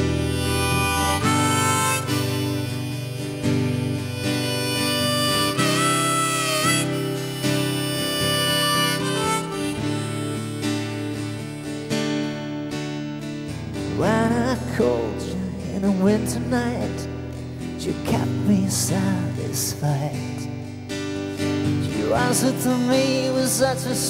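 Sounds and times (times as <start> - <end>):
harmonica: 0.0 - 15.1, 16.8 - 24.0
strummed acoustic guitar: 0.0 - 24.0.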